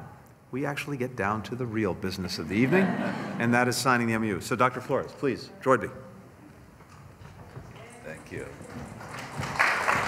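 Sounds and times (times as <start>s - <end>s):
quiet room murmur: 0.0s - 10.0s
faint footsteps: 6.4s - 10.0s.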